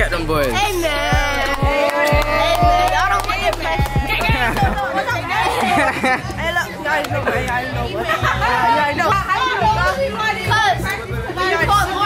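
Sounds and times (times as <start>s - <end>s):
music with heavy bass: 0.0s - 9.8s
boys talking and shouting: 0.0s - 12.0s.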